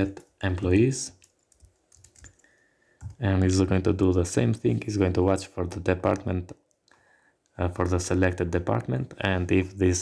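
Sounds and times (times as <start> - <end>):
computer keyboard keystrokes: 0.0 - 3.2.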